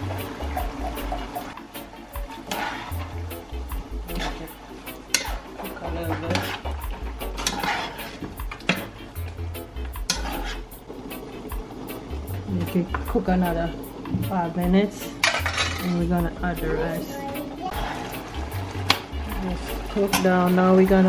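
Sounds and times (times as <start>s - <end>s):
background music with bass: 0.0s - 21.0s
chicken sizzling: 0.0s - 21.0s
metal spoon scraping a pot: 2.3s - 3.2s, 4.0s - 9.0s, 10.0s - 10.8s, 15.2s - 16.0s.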